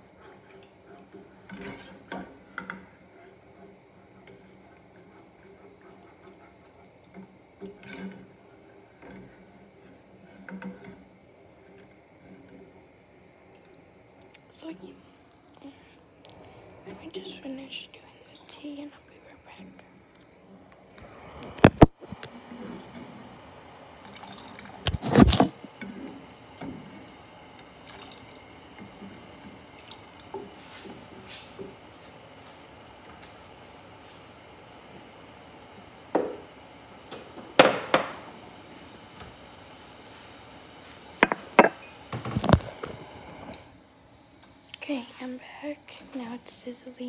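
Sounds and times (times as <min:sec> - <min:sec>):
kettle water sizzling: 0:00.0 - 0:18.9, 0:19.8 - 0:47.0.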